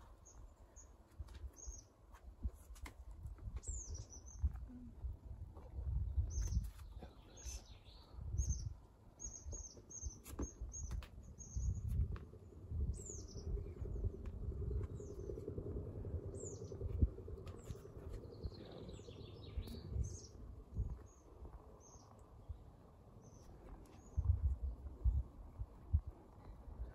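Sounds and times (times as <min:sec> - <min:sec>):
small birds chirping: 0:00.0 - 0:02.6, 0:03.5 - 0:26.9
low rumbles: 0:10.7 - 0:26.9.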